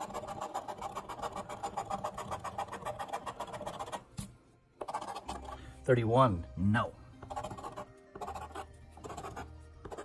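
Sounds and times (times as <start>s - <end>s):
coin scraping scratch card: 0.0s - 4.0s, 4.8s - 5.6s, 7.2s - 10.0s.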